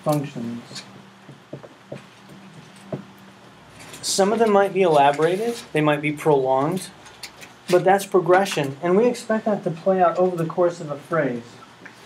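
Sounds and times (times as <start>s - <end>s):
marker tapping and stroking whiteboard: 1.3s - 3.1s.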